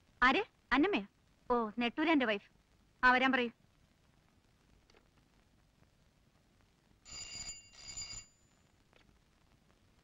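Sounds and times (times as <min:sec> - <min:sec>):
desk telephone ringing: 0:07.1 - 0:08.4.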